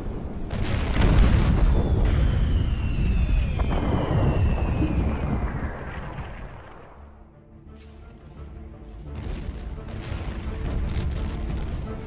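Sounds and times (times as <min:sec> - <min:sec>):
artillery explosions rumbling: 0:00.0 - 0:07.3, 0:09.1 - 0:12.0.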